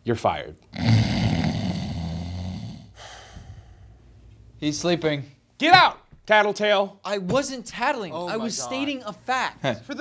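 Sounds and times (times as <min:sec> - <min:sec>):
man snoring: 0:00.7 - 0:03.8.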